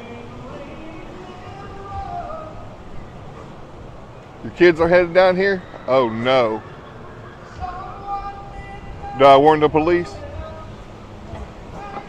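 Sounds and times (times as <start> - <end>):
faint distant music: 0.0 - 12.0
traffic: 0.0 - 12.0
wind rumbling on microphone: 0.0 - 12.0.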